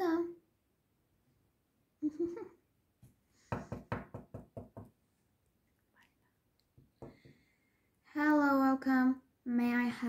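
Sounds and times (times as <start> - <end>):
knocks on a tabletop: 3.5 - 4.9, 7.0 - 7.4.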